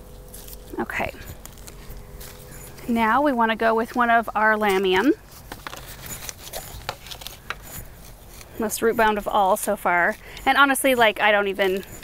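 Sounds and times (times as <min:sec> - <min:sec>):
root ball rustling: 0:00.0 - 0:12.0
plastic pot crinkling: 0:00.2 - 0:12.0.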